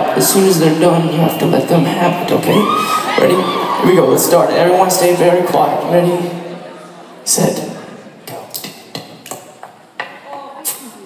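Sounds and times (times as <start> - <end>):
faint voices murmuring: 0.0 - 11.0.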